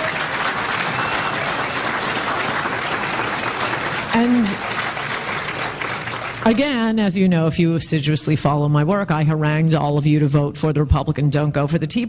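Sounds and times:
audience applauding: 0.0 - 6.8.

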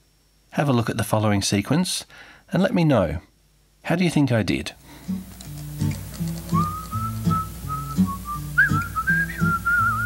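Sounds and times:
whistled melody: 6.5 - 10.0.

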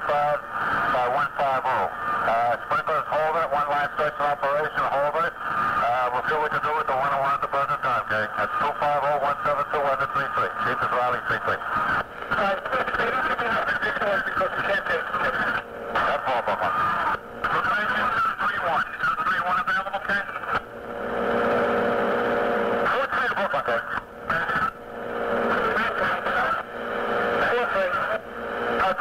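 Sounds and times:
open-channel radio noise: 0.0 - 29.0
voices over two-way radio: 0.0 - 29.0.

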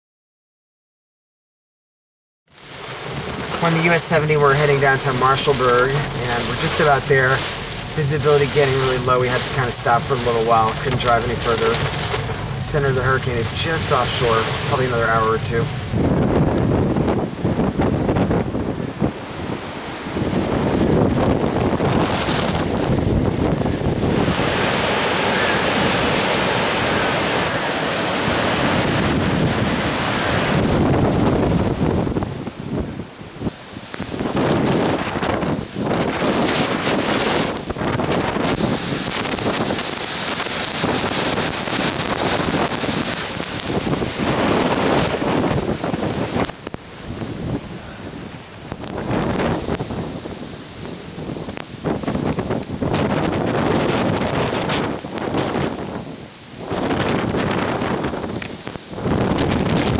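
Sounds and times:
wind gusting through trees: 2.5 - 59.9
wind-driven rain: 2.5 - 59.9
wind buffeting microphone: 2.6 - 59.9.

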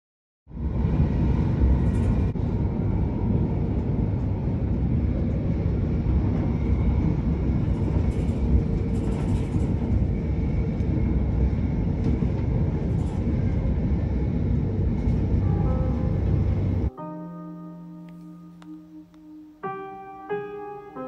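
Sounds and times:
train wheels rumbling on track: 0.6 - 16.9.

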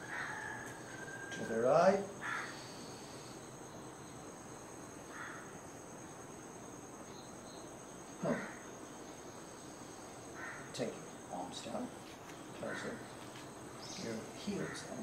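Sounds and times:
insects chirring: 0.0 - 15.0.

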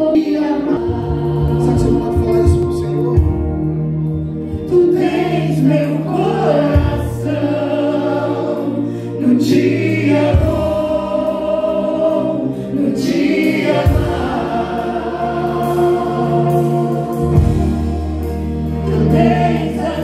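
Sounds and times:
people singing into microphones: 0.0 - 20.0.

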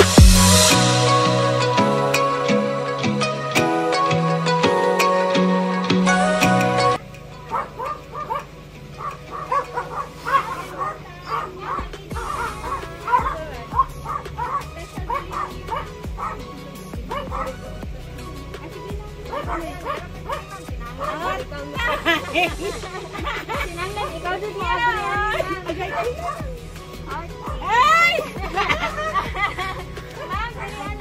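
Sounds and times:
dog barking high-pitched: 7.5 - 16.4, 17.1 - 17.6.

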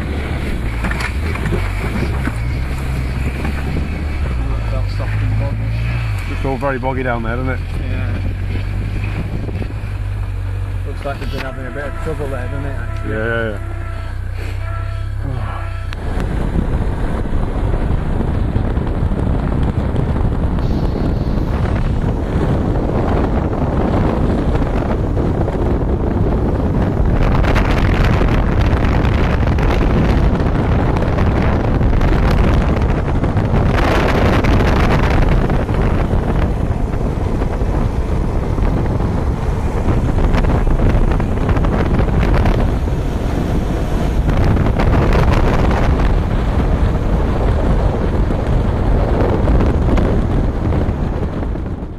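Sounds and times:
buggy engine rumble: 0.0 - 51.9
wind buffeting microphone: 0.0 - 51.9.

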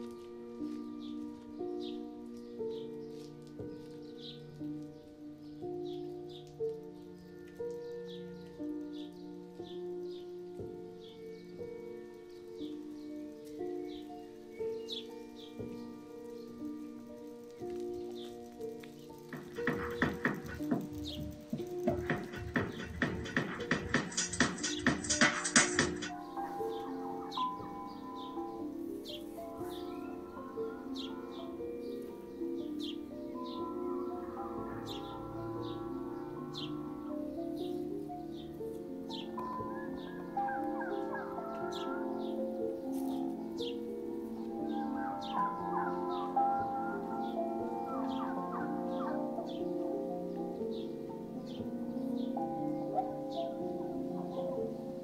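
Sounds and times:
ambient synth pad music: 8.4 - 55.0
bird calls: 11.0 - 55.0.

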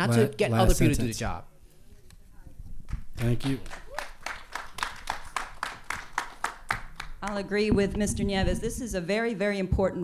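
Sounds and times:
audience applauding: 2.9 - 7.5.

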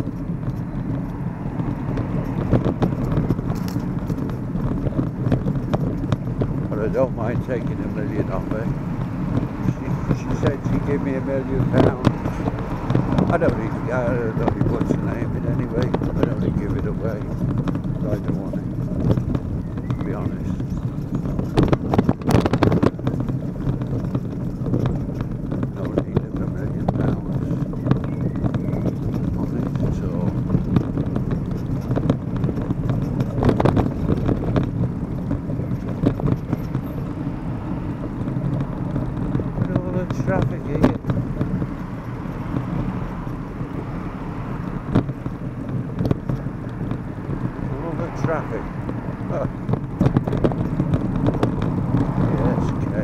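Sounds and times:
road traffic: 0.0 - 53.0
wind buffeting microphone: 0.0 - 53.0.

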